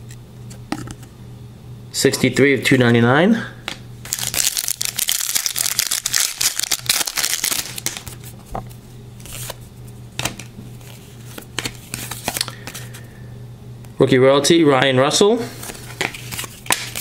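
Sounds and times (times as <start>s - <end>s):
low steady hum: 0.0s - 17.0s
cards rustling and clicking: 3.7s - 9.6s, 10.2s - 13.0s, 15.6s - 17.0s
wrapper crinkling and tearing: 4.1s - 8.2s.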